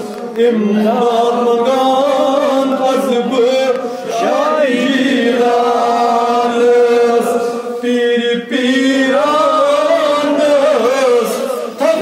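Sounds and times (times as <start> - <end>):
men chanting together: 0.0 - 12.0.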